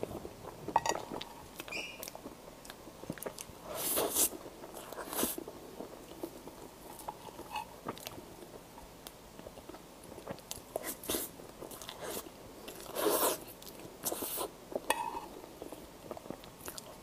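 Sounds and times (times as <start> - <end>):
close chewing and mouth sounds: 0.0 - 17.0.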